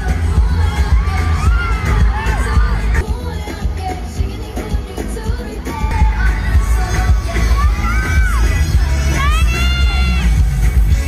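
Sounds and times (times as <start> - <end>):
crowd screaming and cheering: 0.0 - 11.0
live pop music with bass beat: 0.0 - 11.0.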